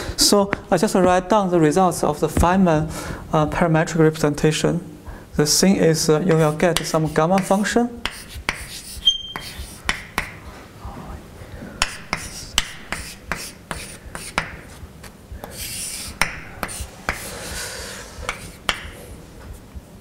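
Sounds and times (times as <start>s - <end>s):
chalk scratching on blackboard: 6.3s - 10.5s, 11.8s - 19.2s
chalk tapping on blackboard: 6.3s - 10.5s, 11.8s - 19.1s.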